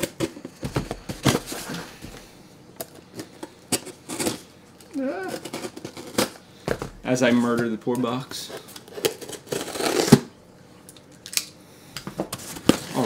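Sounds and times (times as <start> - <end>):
short vocal sound: 4.9 - 5.4
cardboard box ripping open: 9.0 - 10.3.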